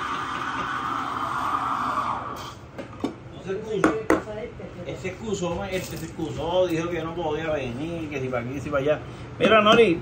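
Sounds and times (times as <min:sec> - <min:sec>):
coffee machine hissing: 0:00.0 - 0:02.7.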